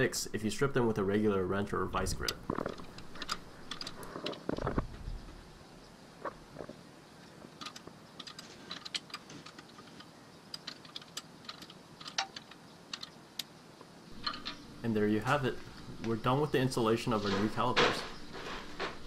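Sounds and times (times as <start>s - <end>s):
handling noise: 1.9s - 5.6s, 14.1s - 19.0s.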